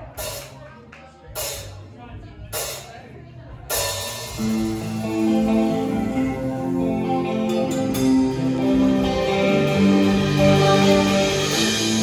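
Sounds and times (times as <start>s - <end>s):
rock band playing: 0.0s - 0.6s, 3.7s - 12.0s.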